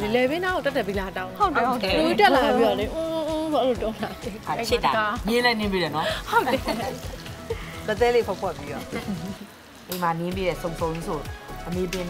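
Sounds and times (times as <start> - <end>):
background music: 0.0 - 12.0
food frying in a pan: 2.1 - 12.0.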